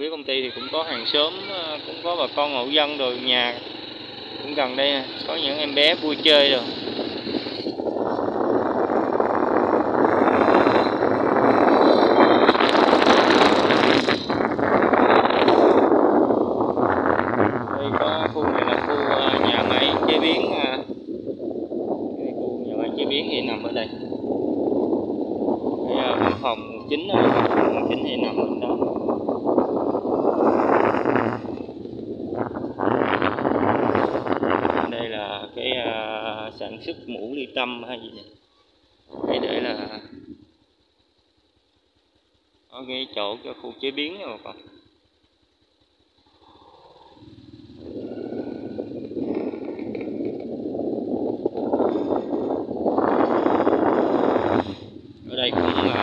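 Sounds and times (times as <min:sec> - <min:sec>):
wind rushing on microphone: 0:00.0 - 0:38.4, 0:39.0 - 0:40.6, 0:46.4 - 0:56.0
road noise: 0:00.0 - 0:56.0.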